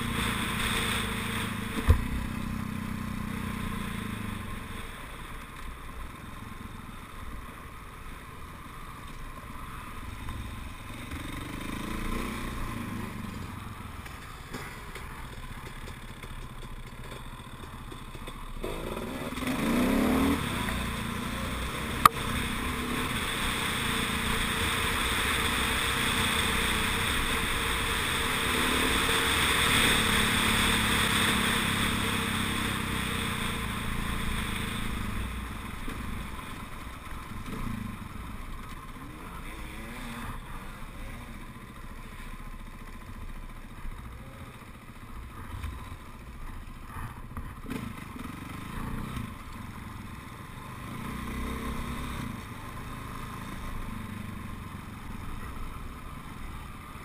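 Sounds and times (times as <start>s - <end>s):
dirt bike engine revving: 10.8s - 13.8s, 18.4s - 35.9s, 50.8s - 54.1s.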